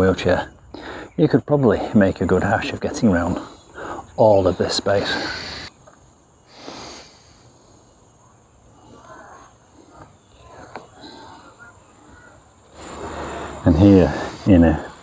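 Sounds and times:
high-pitched insect drone: 0.0s - 15.0s.

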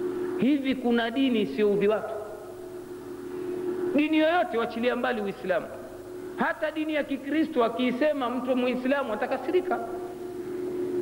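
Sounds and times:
steady low hum: 0.0s - 11.0s
man speaking amplified: 0.4s - 2.4s, 3.9s - 10.1s.

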